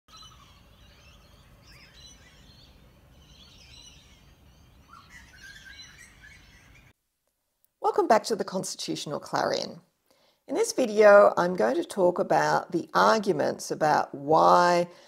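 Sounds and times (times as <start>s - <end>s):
birds chirping: 0.1s - 7.0s
woman speaking: 7.8s - 9.8s, 10.5s - 15.0s.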